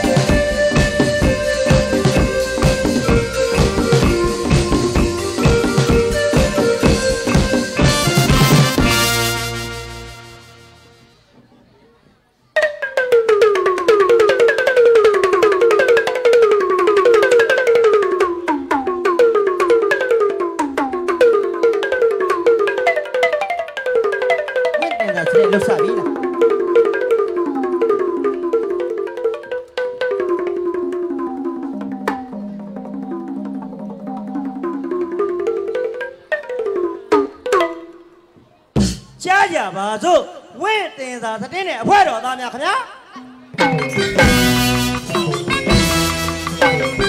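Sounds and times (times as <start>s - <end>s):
tuned drums playing melodic runs: 0.0s - 11.0s, 12.6s - 38.2s, 43.6s - 47.0s.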